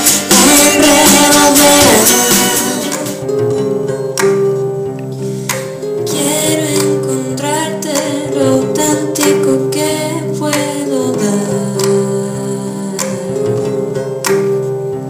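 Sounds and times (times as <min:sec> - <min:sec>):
person singing into microphone: 0:00.0 - 0:03.3, 0:06.0 - 0:14.0
plucked strings accompaniment: 0:00.0 - 0:15.0.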